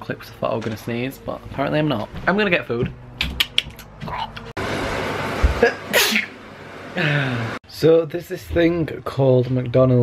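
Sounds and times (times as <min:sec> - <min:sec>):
person sneezing: 0:05.6 - 0:06.4.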